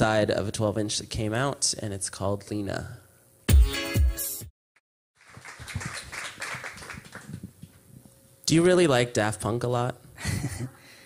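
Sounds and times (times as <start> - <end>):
electronic dance music: 3.5 - 4.5
audience applauding: 5.2 - 7.5.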